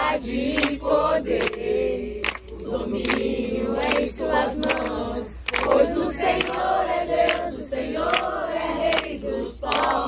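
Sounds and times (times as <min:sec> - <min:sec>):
group singing a hymn: 0:00.0 - 0:10.0
people clapping hands: 0:00.4 - 0:10.0.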